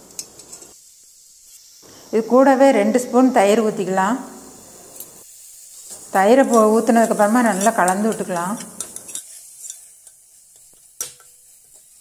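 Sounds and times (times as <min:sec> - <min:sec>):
faint sizzling: 0:00.0 - 0:12.0
metal spoon clicking on cooker: 0:06.5 - 0:10.2.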